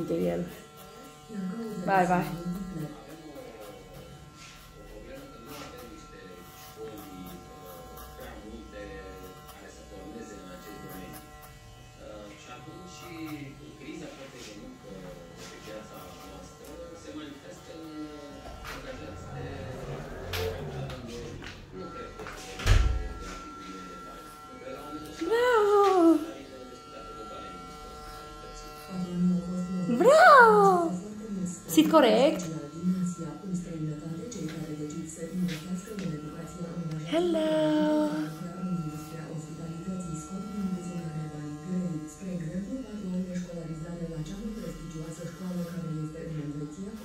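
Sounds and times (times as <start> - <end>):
electric hair clippers buzzing: 0.0 - 47.0
faint voice speaking: 24.8 - 27.5, 29.8 - 33.0, 34.4 - 39.6
high-pitched voice: 29.9 - 31.0, 37.1 - 38.3.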